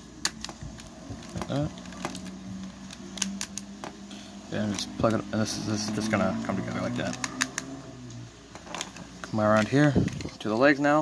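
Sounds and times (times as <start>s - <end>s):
plastic parts clicking: 0.2s - 4.0s, 7.0s - 7.7s.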